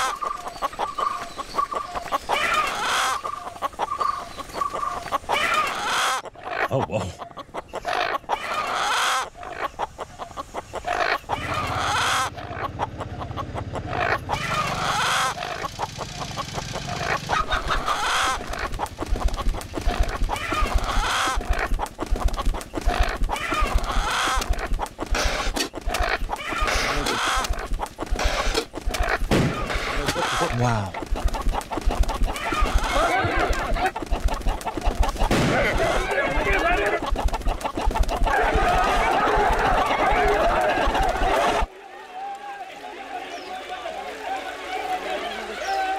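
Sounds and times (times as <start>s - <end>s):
chicken clucking: 0.0s - 41.7s.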